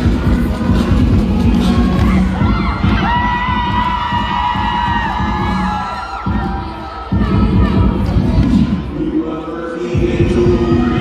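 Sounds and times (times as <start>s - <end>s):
dance music with heavy bass: 0.0s - 11.0s
crowd cheering: 1.8s - 7.3s.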